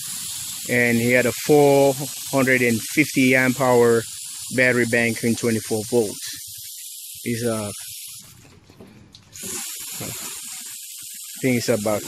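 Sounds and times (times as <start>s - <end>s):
water spraying with steady hiss: 0.0s - 12.0s.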